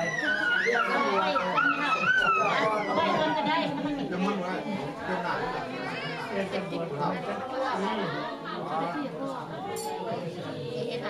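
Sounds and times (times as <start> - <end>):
group of people talking: 0.0 - 11.0.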